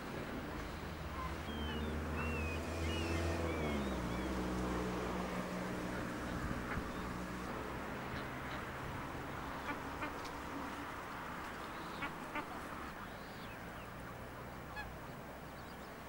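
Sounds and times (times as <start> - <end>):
open-air noise: 0.0 - 16.0
waterbirds calling: 0.4 - 16.0.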